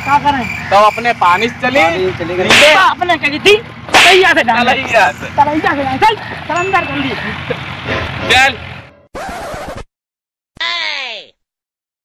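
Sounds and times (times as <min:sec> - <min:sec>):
men calling out: 0:00.0 - 0:08.2.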